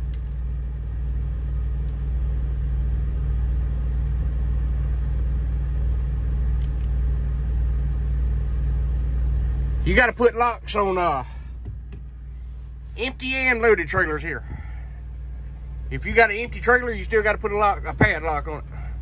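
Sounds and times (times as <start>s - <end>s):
diesel engine idling: 0.0s - 19.0s.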